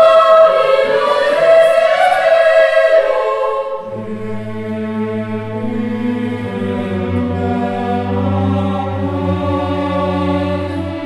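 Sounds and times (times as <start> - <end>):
choir singing held chord: 0.0 - 11.0.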